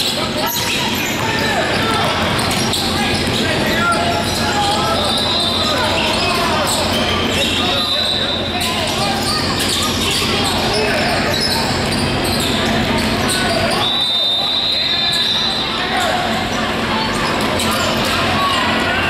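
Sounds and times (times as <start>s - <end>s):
chatter of players and spectators: 0.0s - 19.0s
basketballs bouncing on wood floor: 0.6s - 4.8s.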